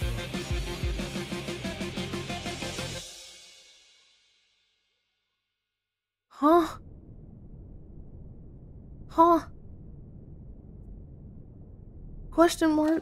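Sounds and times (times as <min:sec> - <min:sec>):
person sighing: 0:06.4 - 0:06.8.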